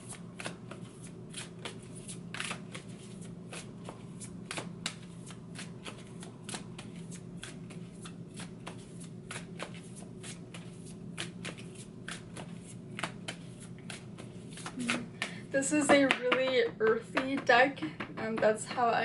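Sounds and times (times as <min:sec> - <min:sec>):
cards being shuffled: 0:00.0 - 0:15.4.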